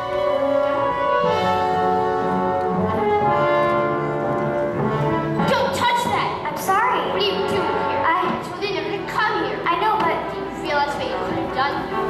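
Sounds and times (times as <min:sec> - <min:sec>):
orchestral brass chords: 0:00.0 - 0:08.4.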